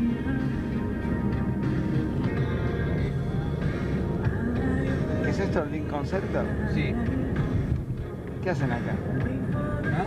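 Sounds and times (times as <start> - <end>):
music with long held notes: 0.0 - 10.0
steady low rumble: 0.0 - 10.0.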